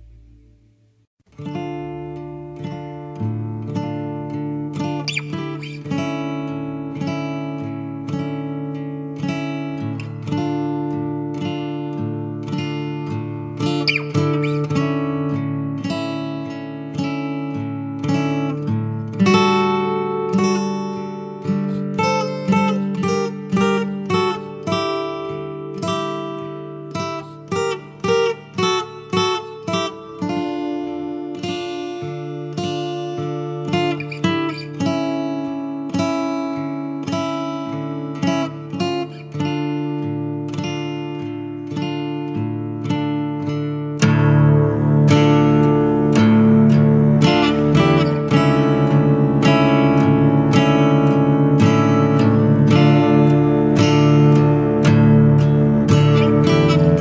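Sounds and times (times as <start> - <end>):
rock music with acoustic guitar: 1.3 - 57.0.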